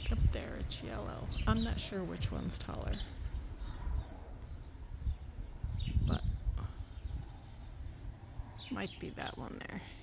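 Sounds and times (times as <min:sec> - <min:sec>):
wind buffeting microphone: 0:00.0 - 0:09.8
faint natural background: 0:00.0 - 0:10.0.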